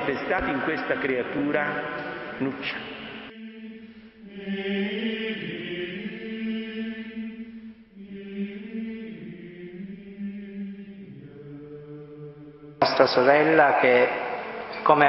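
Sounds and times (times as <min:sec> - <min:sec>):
slow chanted singing: 0:00.0 - 0:15.0.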